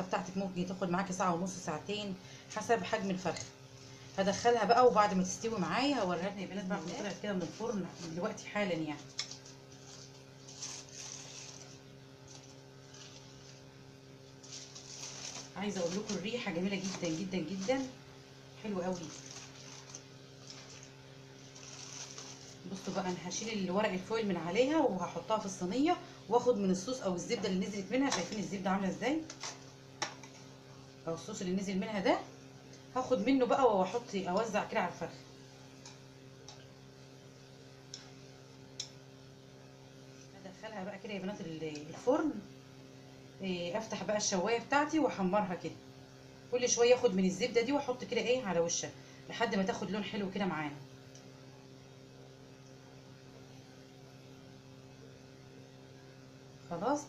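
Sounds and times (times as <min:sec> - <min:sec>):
steady electrical hum: 0:00.0 - 0:57.0
aluminium foil crinkling: 0:09.0 - 0:18.0, 0:18.6 - 0:23.4.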